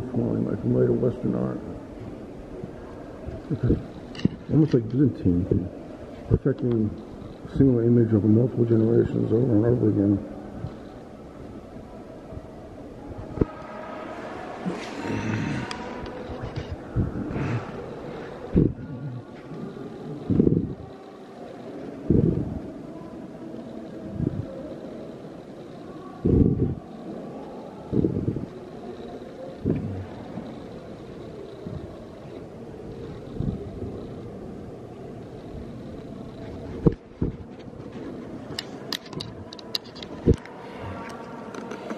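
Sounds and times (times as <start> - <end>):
low room hum: 0.0 - 41.9.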